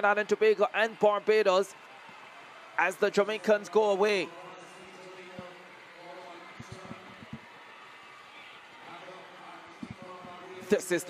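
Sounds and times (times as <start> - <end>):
murmur of distant crowd voices: 0.0 - 11.0.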